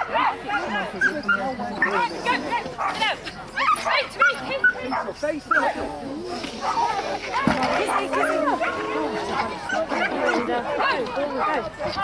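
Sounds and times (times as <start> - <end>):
people talking and calling: 0.0 - 12.0
dog barking: 4.2 - 5.7, 7.8 - 12.0.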